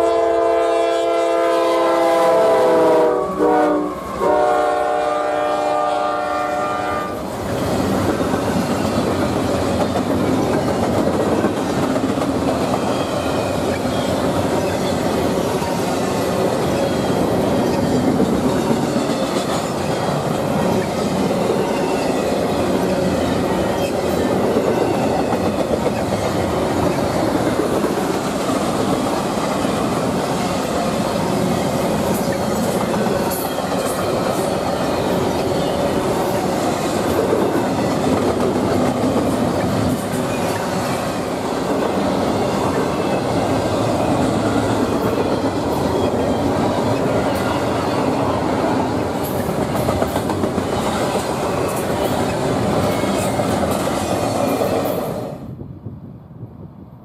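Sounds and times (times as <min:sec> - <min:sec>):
freight train wheels rumbling: 0:00.0 - 0:56.9.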